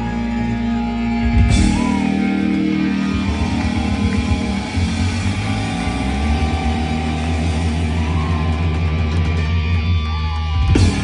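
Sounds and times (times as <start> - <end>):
rock band playing loudly: 0.0 - 11.0.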